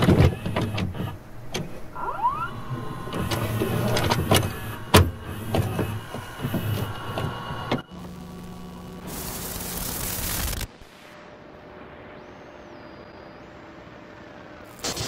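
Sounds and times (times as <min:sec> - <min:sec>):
short rising squeak: 0:01.9 - 0:04.9.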